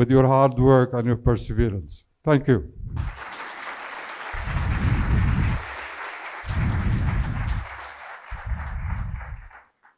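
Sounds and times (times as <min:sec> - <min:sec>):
audience applauding: 0:03.0 - 0:09.9.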